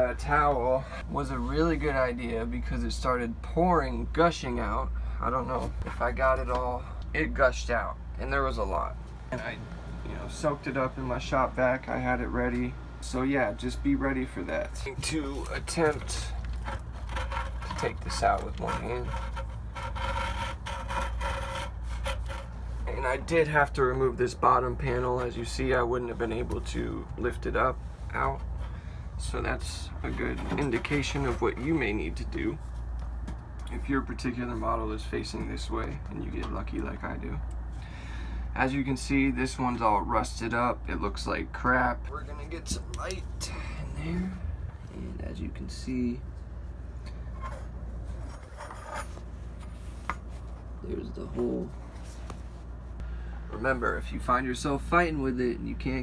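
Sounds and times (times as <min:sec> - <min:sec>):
steady low hum: 0:00.0 - 0:56.0
metal rubbing and scraping: 0:14.7 - 0:23.4, 0:25.0 - 0:32.9, 0:47.2 - 0:52.7.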